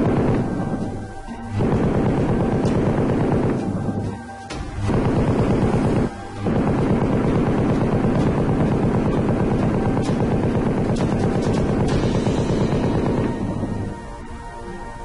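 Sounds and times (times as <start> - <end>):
machine gun firing bursts: 0.0 - 14.0.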